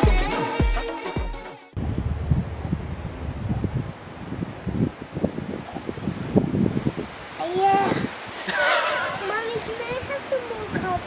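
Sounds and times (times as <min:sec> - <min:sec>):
music track: 0:00.0 - 0:01.8
wind rumbling on microphone: 0:01.8 - 0:11.0.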